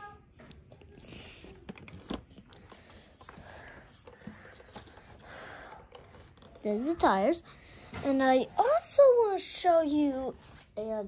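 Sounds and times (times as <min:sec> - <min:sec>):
handling clicks and knocks: 0:01.5 - 0:07.0
breathing and sniffing: 0:02.5 - 0:08.0.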